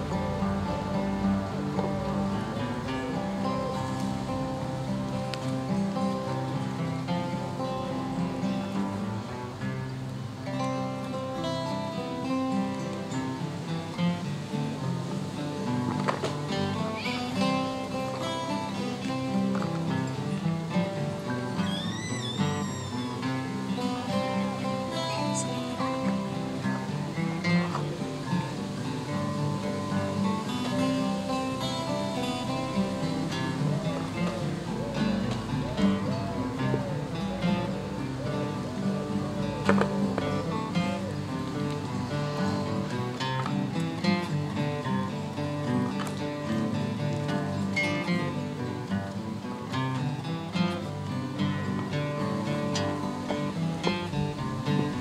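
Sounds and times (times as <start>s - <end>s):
acoustic guitars playing a jig: 0.0s - 55.0s.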